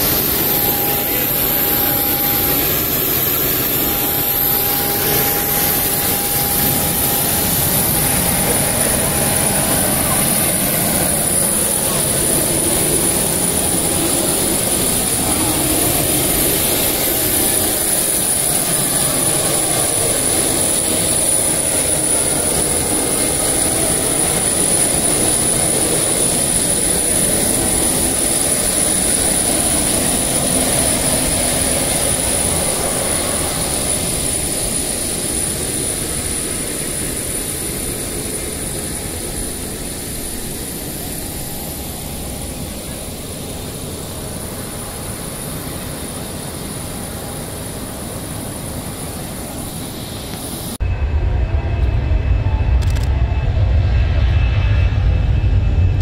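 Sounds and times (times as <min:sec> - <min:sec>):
crowd voices: 0:00.0 - 0:37.2
jet turbine whine: 0:00.0 - 0:56.0.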